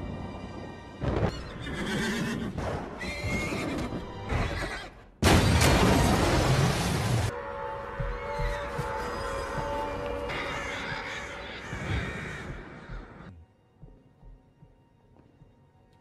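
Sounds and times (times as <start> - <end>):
dramatic orchestral film score: 0.0 - 5.1, 6.7 - 16.0
horses neighing: 1.3 - 5.0, 8.2 - 13.3.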